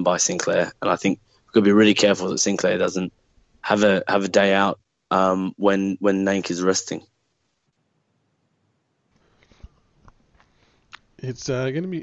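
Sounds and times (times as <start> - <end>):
person speaking: 0.0 - 7.1
soft breathing: 9.1 - 11.0.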